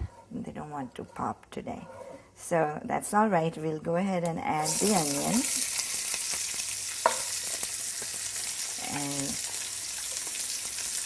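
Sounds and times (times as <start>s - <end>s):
oil sizzling in a frying pan: 4.6s - 11.0s.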